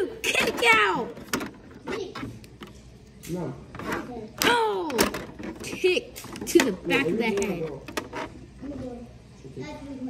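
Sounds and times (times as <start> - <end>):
plastic figures tapping and rubbing: 0.3 - 2.8, 3.7 - 8.7.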